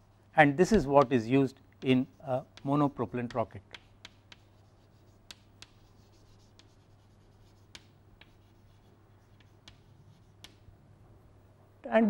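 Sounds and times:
chalk tapping: 0.0 - 10.8
chalk scratching on blackboard: 1.8 - 10.7.

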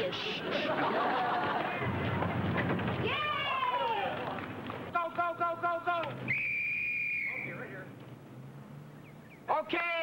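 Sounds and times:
referee's whistle blast: 6.3 - 7.6.

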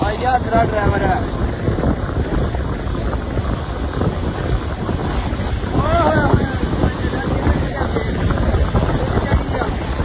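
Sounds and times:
road and engine rumble: 0.0 - 10.0
wind buffeting microphone: 0.0 - 10.0.

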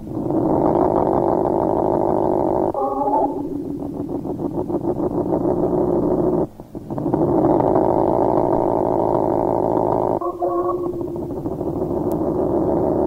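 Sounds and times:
industrial noise drone: 0.0 - 13.0.

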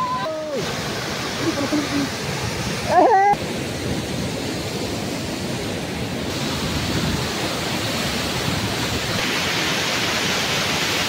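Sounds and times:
river rapids over rock: 0.0 - 11.0
waterfall rushing: 0.0 - 11.0.

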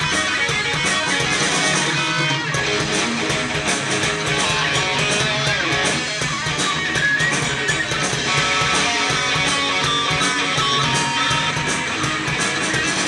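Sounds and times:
bass guitar: 0.0 - 13.0
electric guitars: 0.0 - 13.0
steady drum beat: 0.0 - 13.0.

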